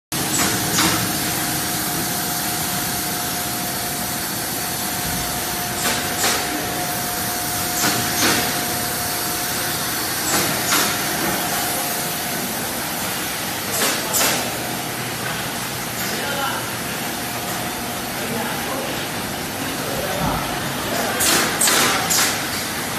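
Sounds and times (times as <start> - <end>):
machine clack and hiss: 0.2 - 16.4, 20.3 - 22.9
packaging machine humming: 0.2 - 22.9.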